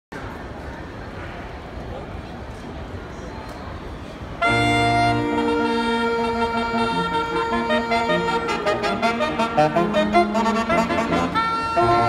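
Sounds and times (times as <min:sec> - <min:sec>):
murmur of a large hall: 0:00.1 - 0:12.0
baritone saxophone bass line: 0:04.4 - 0:12.0
saxophone quartet playing: 0:04.4 - 0:12.0.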